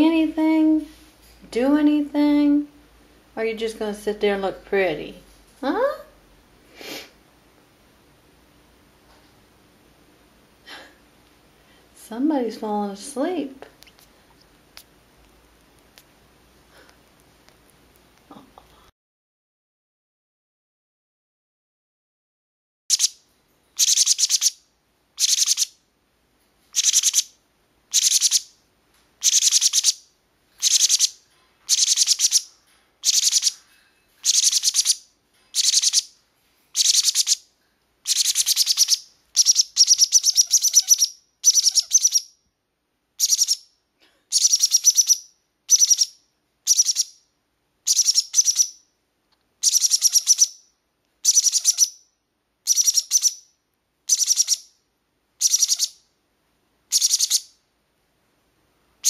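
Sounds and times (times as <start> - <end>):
parrot chicks screaming: 23.8 - 24.6, 25.2 - 25.7, 26.8 - 27.3, 27.9 - 28.4, 29.2 - 30.0, 30.6 - 33.6, 34.2 - 35.0, 35.6 - 36.1, 36.8 - 37.4, 38.1 - 42.3, 49.6 - 50.5, 51.2 - 52.0, 55.4 - 55.9.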